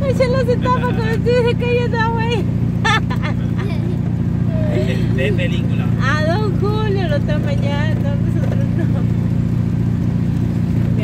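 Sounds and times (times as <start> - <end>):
voices talking: 0.0 - 9.3
vehicle engine and road drone: 0.0 - 11.0.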